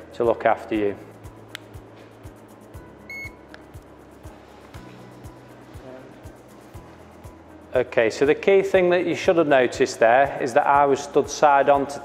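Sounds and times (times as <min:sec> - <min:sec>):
background music with low beat: 0:00.0 - 0:12.0
short high electronic beep: 0:03.1 - 0:03.4.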